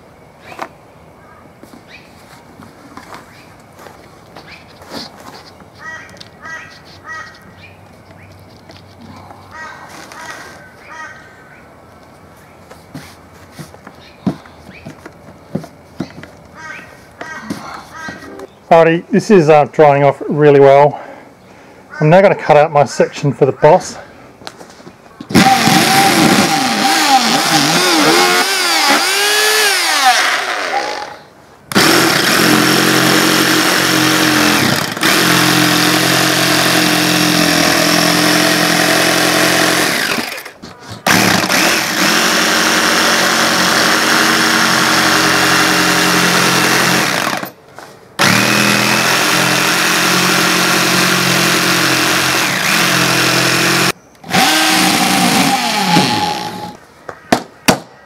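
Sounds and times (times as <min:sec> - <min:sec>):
cordless drill whirring: 0:25.3 - 0:47.5, 0:48.2 - 0:56.8
jigsaw cutting wood: 0:25.3 - 0:47.5, 0:48.2 - 0:56.8.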